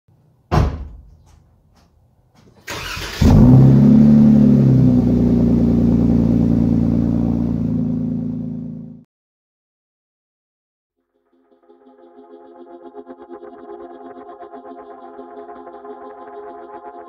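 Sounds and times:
thump: 0:00.5 - 0:01.4
engine revving and idling: 0:02.7 - 0:09.0.

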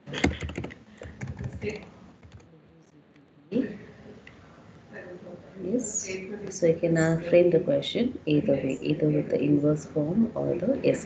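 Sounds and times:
computer keyboard typing: 0:00.1 - 0:02.5.

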